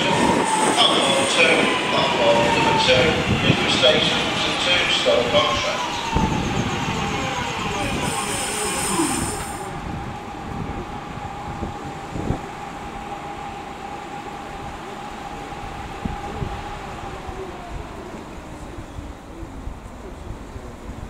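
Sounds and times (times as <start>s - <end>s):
train passing: 0.0s - 21.0s.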